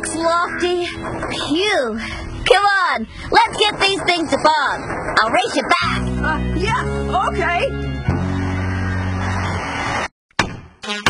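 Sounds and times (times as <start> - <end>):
sharp knock: 10.4 - 10.8.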